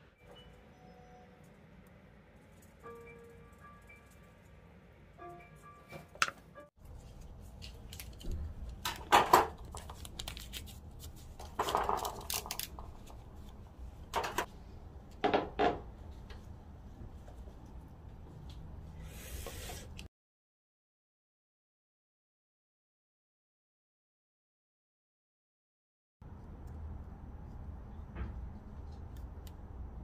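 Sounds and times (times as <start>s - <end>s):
faint music: 0.0s - 8.8s.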